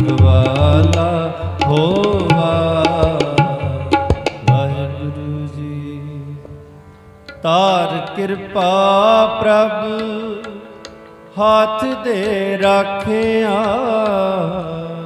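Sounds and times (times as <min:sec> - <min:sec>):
person singing: 0:00.0 - 0:06.5
harmoniums holding notes: 0:00.0 - 0:15.0.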